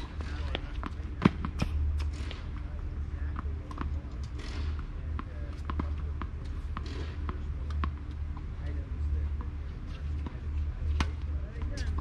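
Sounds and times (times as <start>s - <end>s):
racquet strikes: 0.0s - 2.7s, 3.3s - 8.5s, 10.2s - 12.0s
tennis balls bouncing on hard court: 3.3s - 8.0s.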